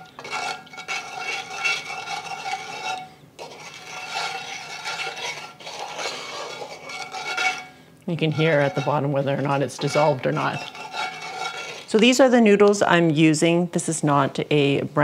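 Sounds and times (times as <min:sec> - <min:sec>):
utensil scraping pan bottom: 0:00.0 - 0:12.2.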